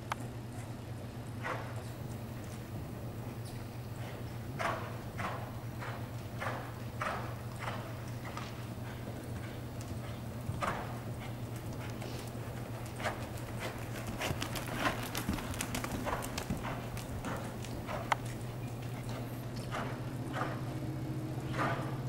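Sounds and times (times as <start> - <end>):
steady low hum: 0.0 - 22.0
horse hooves walking on dirt: 0.1 - 22.0.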